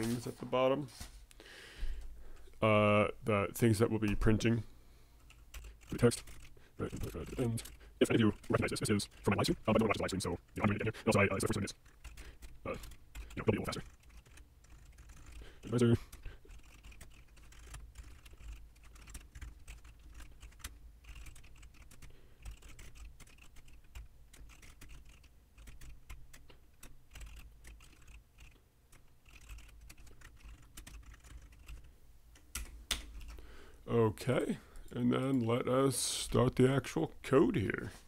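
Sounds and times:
computer keyboard typing: 5.2 - 33.4.

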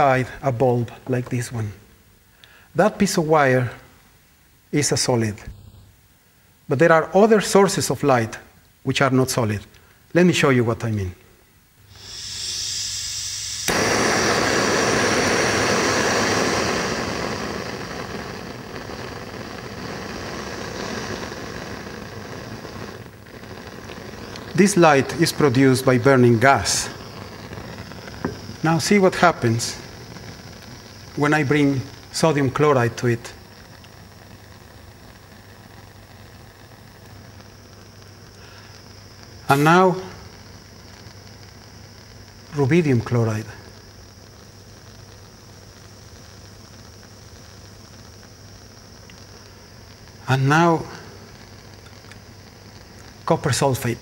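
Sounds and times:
steady rush of flame: 11.8 - 54.0
blowtorch lighting pop: 11.9 - 42.6, 43.6 - 53.6
gas hissing from nozzle: 11.9 - 54.0.

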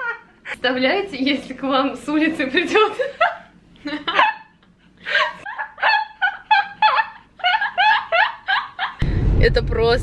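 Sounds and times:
women laughing: 0.0 - 0.6, 2.7 - 9.0.

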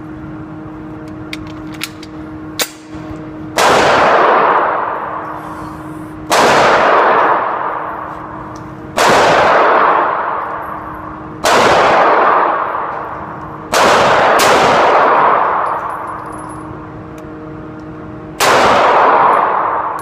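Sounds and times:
pistol shots echoing: 2.6 - 5.2, 6.3 - 8.0, 8.9 - 10.7, 11.4 - 16.0, 18.4 - 20.0.

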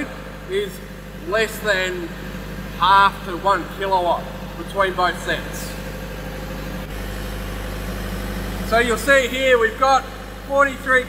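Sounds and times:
diesel generators running: 0.0 - 11.0.

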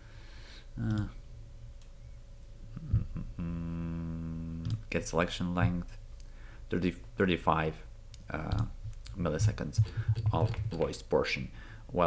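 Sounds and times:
man humming hesitantly: 2.7 - 4.8.

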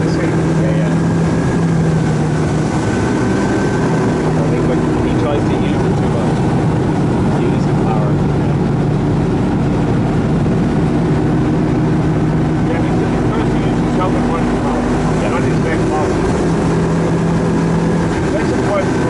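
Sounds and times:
boat engine running: 0.0 - 19.0
water rushing from wake: 0.0 - 19.0.

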